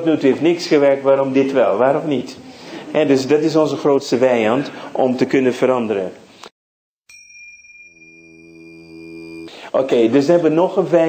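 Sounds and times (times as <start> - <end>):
high chime-like ringing tone: 7.1 - 9.6.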